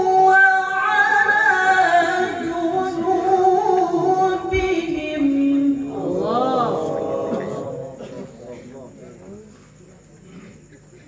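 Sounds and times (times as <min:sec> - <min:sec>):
faint background voices: 0:02.0 - 0:11.0.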